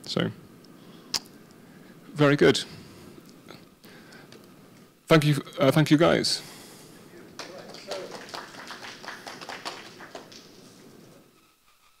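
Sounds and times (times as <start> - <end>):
small audience clapping: 7.1 - 11.2.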